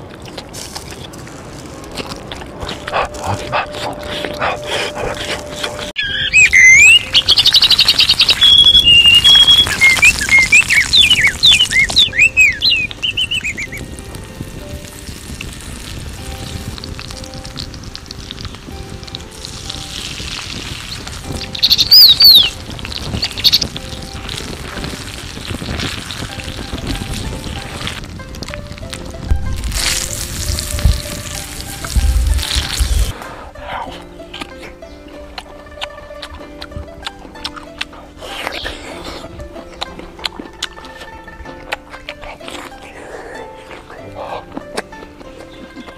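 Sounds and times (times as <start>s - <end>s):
quiet background music: 0.0s - 45.9s
birds singing: 2.9s - 14.0s, 20.6s - 24.9s, 32.0s - 36.5s, 38.1s - 41.5s, 42.1s - 45.9s.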